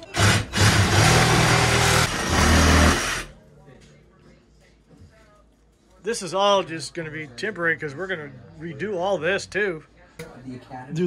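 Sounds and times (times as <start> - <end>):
power saw cutting wood: 0.0 - 3.3.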